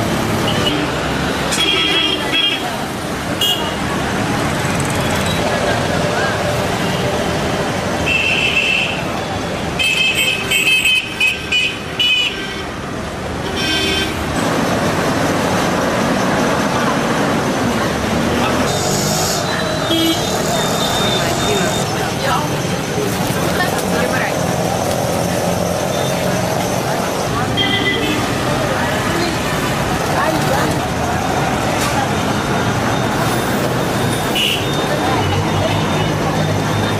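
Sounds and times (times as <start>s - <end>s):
motor vehicles passing: 2.2s - 8.1s, 12.9s - 36.9s.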